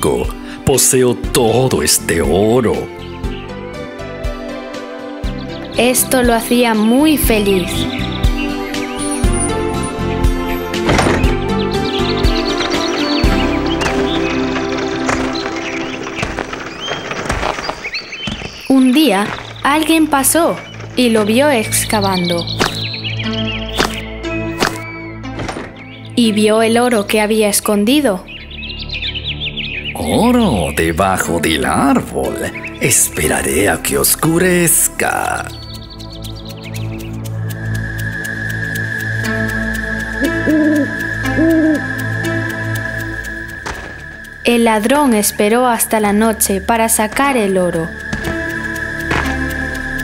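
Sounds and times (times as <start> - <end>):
high bird-like chirps: 5.2 - 50.0
owl hooting: 35.4 - 50.0.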